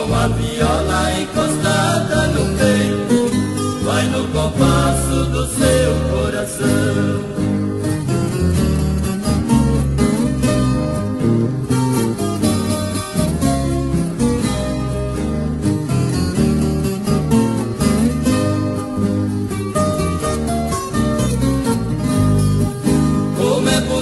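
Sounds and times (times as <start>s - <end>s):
plucked acoustic guitars: 0.0s - 24.0s
steady bass line: 0.0s - 24.0s.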